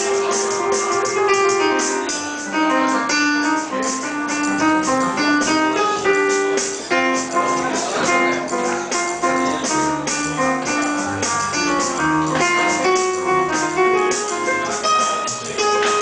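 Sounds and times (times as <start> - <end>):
piano chords: 0.0 - 16.0
upright bass line: 0.0 - 16.0.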